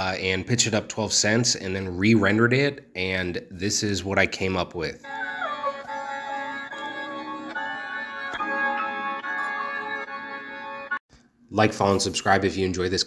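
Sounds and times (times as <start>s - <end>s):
sustained organ-like chords: 5.1s - 11.0s.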